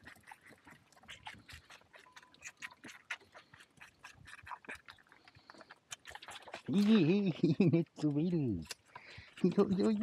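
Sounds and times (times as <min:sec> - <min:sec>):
lamb nibbling clicks and crunches: 0:00.0 - 0:10.0.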